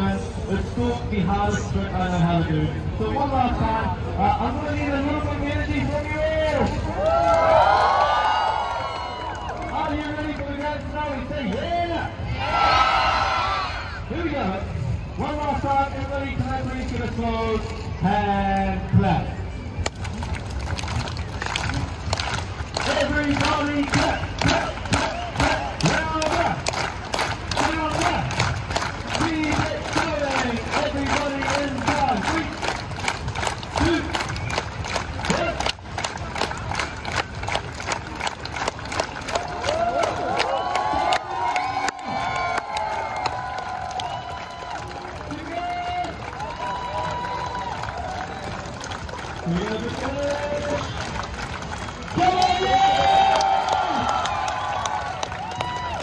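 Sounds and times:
crowd voices and cheers: 0.0s - 26.7s, 39.0s - 56.0s
crowd clapping in rhythm: 6.0s - 11.7s, 19.8s - 56.0s.

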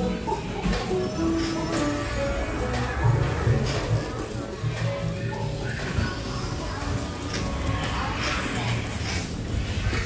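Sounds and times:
background music: 0.0s - 9.8s
indistinct voices: 0.0s - 10.0s.

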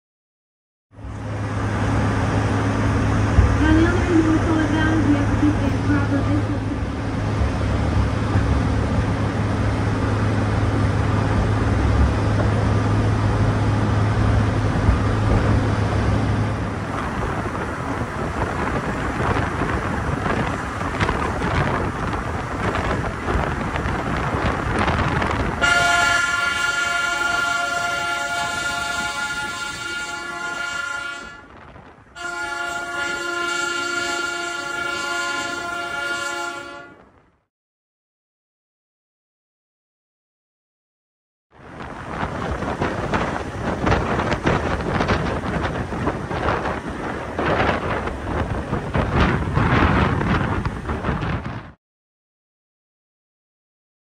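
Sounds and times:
train engine hum: 0.9s - 37.5s, 41.5s - 51.8s
railway car rattling: 1.0s - 37.4s, 41.6s - 51.8s.

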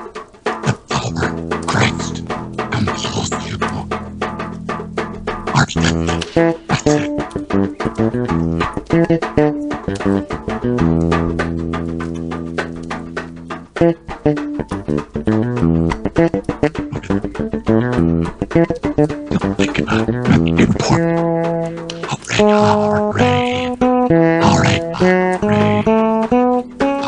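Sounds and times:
bass guitar: 0.0s - 27.0s
guitar plucked notes: 0.0s - 27.0s.

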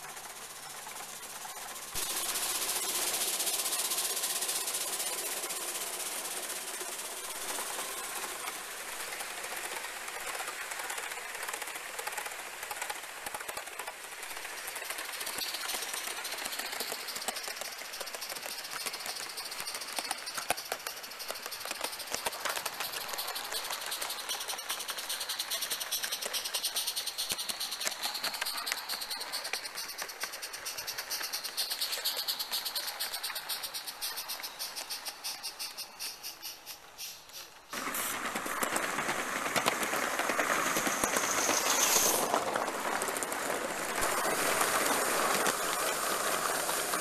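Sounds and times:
model train clicking on rails: 0.0s - 47.0s
steam hissing: 0.0s - 47.0s.

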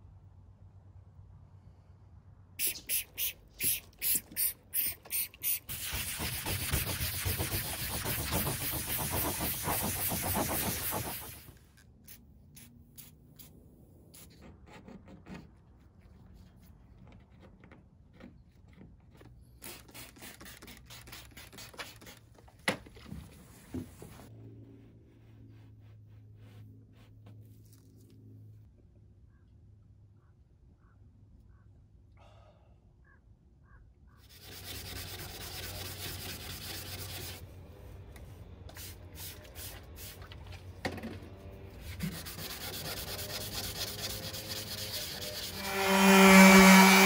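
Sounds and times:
spray hissing: 2.6s - 11.6s
scraping decals off hull: 2.6s - 11.7s, 34.3s - 37.5s, 38.6s - 47.0s.

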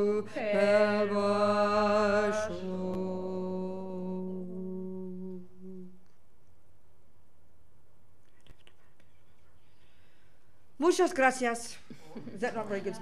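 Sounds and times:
group of voices chanting in unison: 0.0s - 4.3s.

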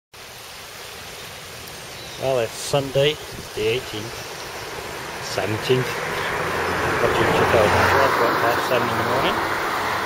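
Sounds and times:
river flowing: 0.2s - 10.0s.

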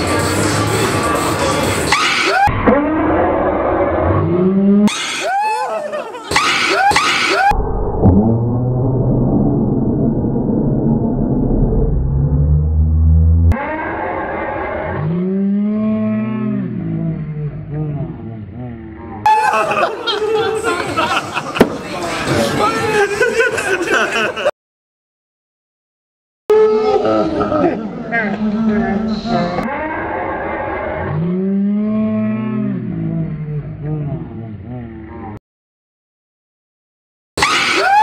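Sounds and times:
low drone: 7.4s - 19.2s
man's low moo-like vocal call: 15.0s - 18.9s, 31.1s - 35.0s
lower vocal tone: 31.3s - 35.4s.

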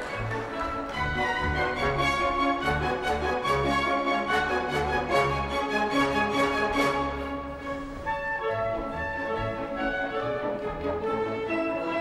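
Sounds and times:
orchestral dance music: 0.0s - 12.0s.

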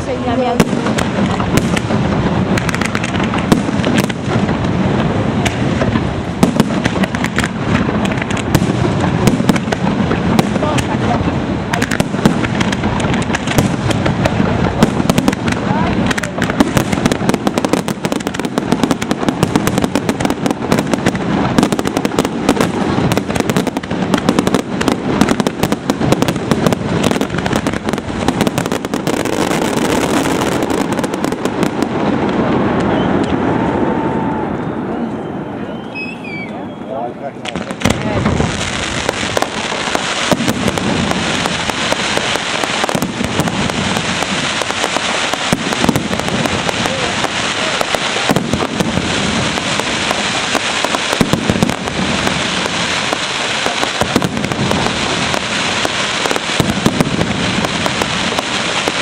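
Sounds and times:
loud fireworks hiss: 0.0s - 34.5s, 37.4s - 59.0s
fireworks bangs and crackles: 0.0s - 59.0s.

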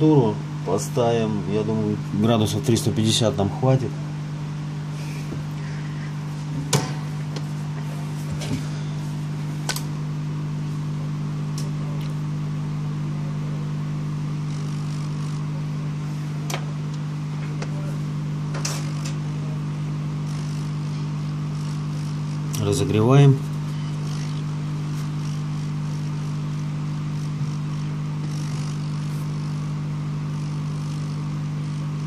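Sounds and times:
hot air station humming: 0.0s - 32.0s.

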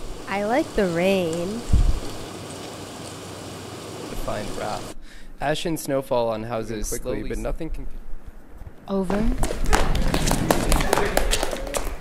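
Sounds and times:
steady background hiss: 0.0s - 9.0s.

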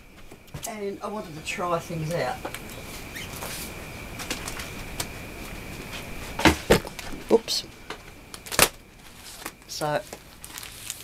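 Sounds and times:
handling noises at a desk: 2.5s - 11.0s.

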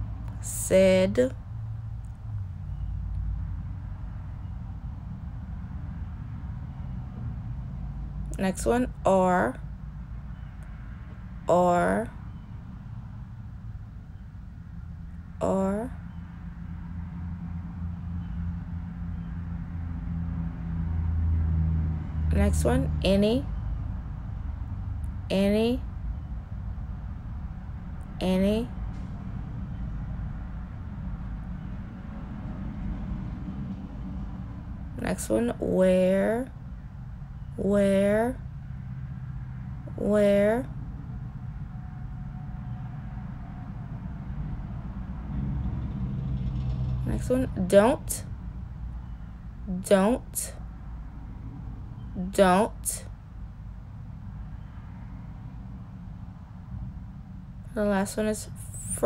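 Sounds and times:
low rumbling hum: 0.0s - 59.0s
faint hum: 47.1s - 59.0s.

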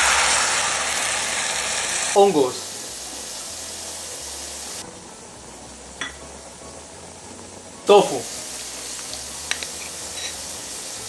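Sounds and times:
sauce simmering in a pot: 0.0s - 11.0s.

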